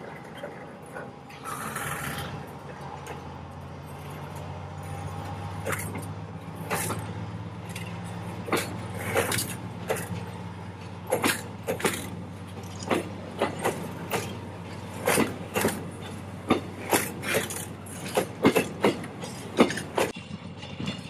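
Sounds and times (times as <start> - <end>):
locomotive engine humming: 0.0 - 21.0
train wheels clacking on rail joints: 0.0 - 21.0.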